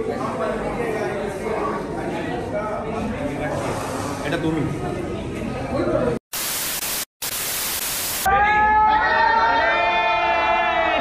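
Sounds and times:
loud white-noise static: 0:06.3 - 0:08.3.

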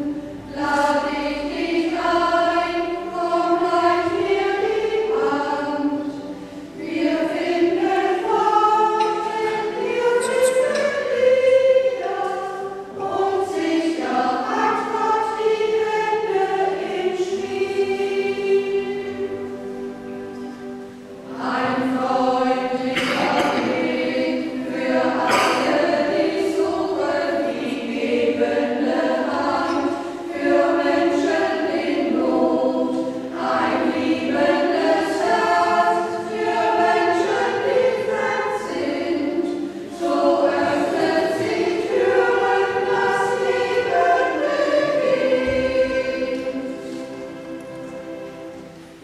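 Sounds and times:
group singing sacred song: 0:00.0 - 0:20.6, 0:21.2 - 0:48.8.

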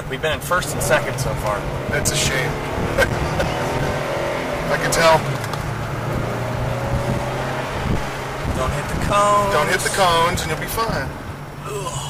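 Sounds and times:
car engine drone from cabin: 0:00.0 - 0:12.0.

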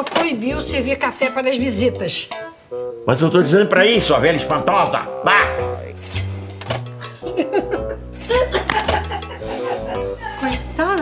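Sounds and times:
light background music: 0:00.0 - 0:11.0.

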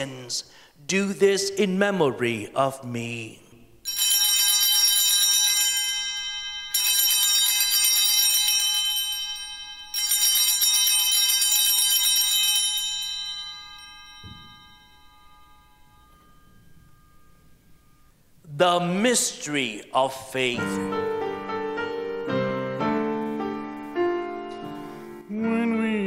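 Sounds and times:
altar bells ringing: 0:03.8 - 0:19.5
soft thump: 0:14.2 - 0:14.7.

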